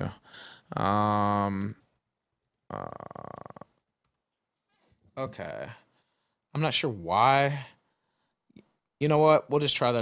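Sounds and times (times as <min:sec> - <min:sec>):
man saying uh in vocal fry: 0:00.0 - 0:01.8, 0:02.7 - 0:03.7.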